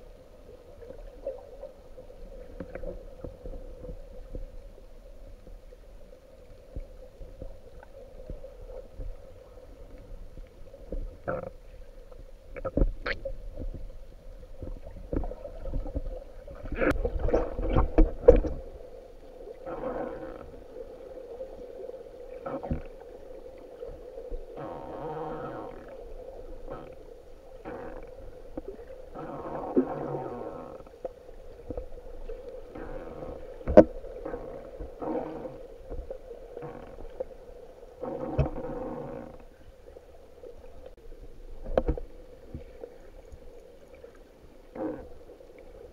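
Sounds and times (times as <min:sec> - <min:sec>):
underwater low hum: 0:00.0 - 0:45.9.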